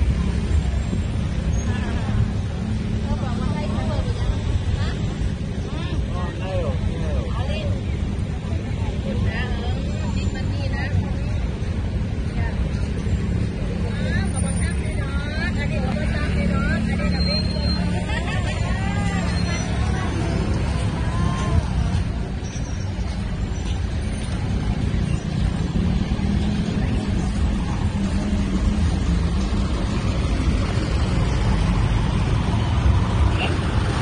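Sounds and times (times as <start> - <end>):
people talking: 0.0 - 34.0
traffic rumble: 0.0 - 34.0.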